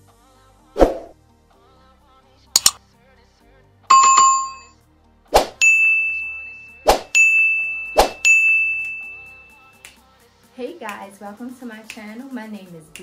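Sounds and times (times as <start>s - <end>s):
sharp mouse click: 2.6s - 2.8s
bright bell ding: 3.9s - 4.7s, 5.6s - 9.7s
chime: 3.9s - 4.7s, 5.6s - 9.8s.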